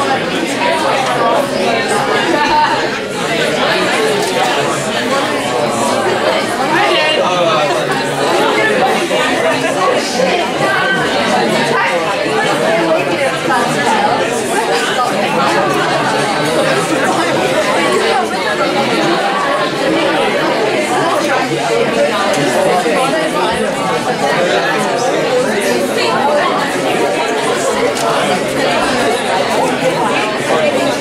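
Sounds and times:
babble of overlapping conversations: 0:00.0 - 0:31.0.

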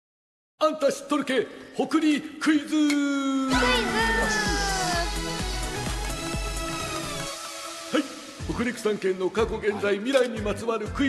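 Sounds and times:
upbeat jingle with steady beat: 0:03.5 - 0:08.9.

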